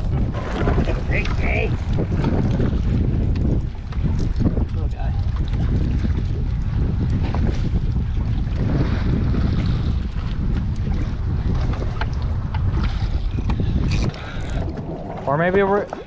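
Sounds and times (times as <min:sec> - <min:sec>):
water sloshing against hull: 0:00.0 - 0:16.0
wind buffeting microphone: 0:00.0 - 0:16.0.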